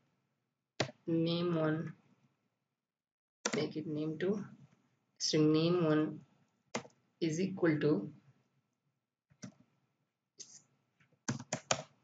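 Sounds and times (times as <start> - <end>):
computer keyboard typing: 0.8 - 1.0, 6.7 - 7.0, 11.3 - 12.0.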